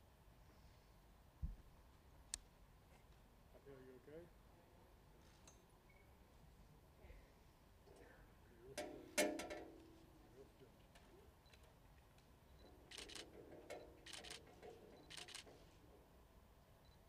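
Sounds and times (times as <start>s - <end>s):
camera shutter clicks: 12.9s - 15.6s.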